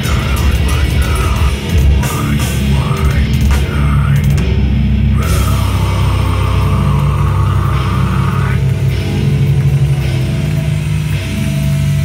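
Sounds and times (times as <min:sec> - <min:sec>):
death metal band playing live: 0:00.0 - 0:12.0.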